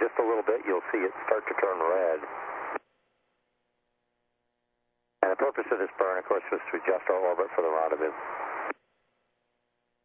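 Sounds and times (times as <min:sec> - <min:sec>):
man speaking over radio: 0:00.0 - 0:02.3, 0:05.2 - 0:08.2
radio hiss: 0:00.0 - 0:02.8, 0:05.2 - 0:08.8
faint steady hum: 0:00.0 - 0:10.0.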